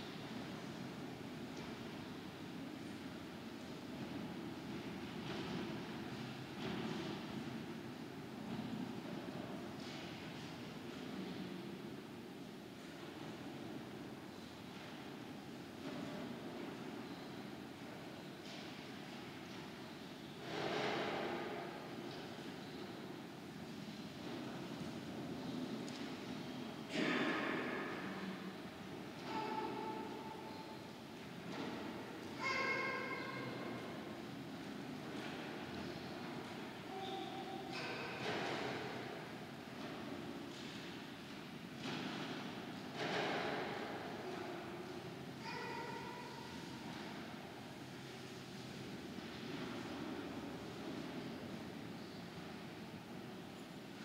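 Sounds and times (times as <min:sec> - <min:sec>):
steady hum and hiss: 0:00.0 - 0:54.0.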